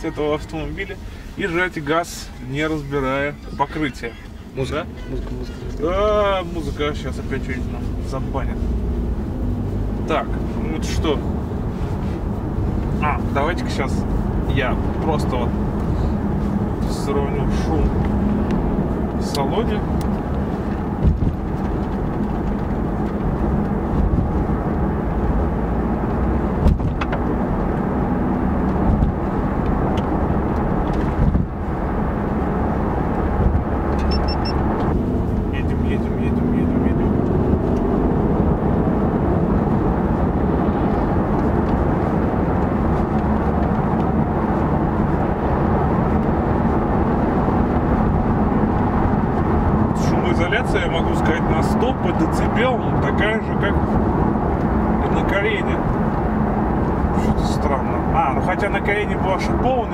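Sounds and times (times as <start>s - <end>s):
road and tyre noise in car: 0.0s - 59.9s.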